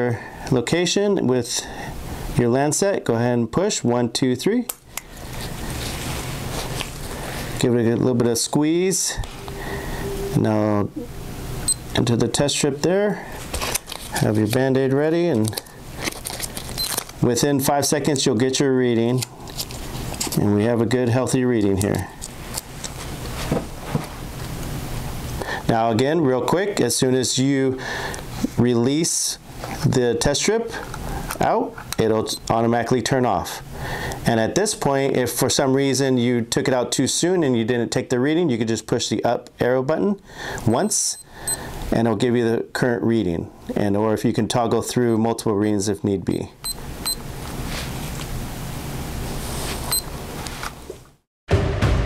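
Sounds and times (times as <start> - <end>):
low hum: 8.2 - 14.0
high-pitched electronic beeps: 9.3 - 11.9.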